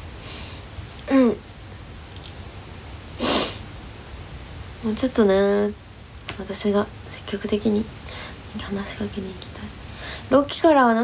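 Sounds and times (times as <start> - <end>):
faint room hum: 0.0 - 11.0
woman sniffing: 3.2 - 3.6.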